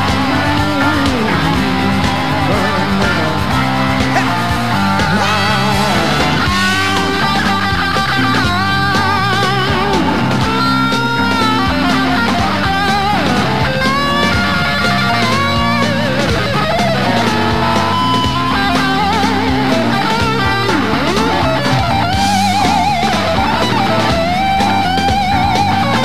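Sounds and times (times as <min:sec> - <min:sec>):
electric guitar lead with bends: 0:00.0 - 0:26.0
rock band playing: 0:00.0 - 0:26.0.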